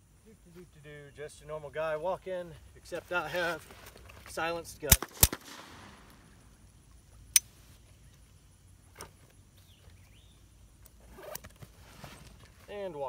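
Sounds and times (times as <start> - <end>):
suppressed pistol shot: 4.9 - 6.4.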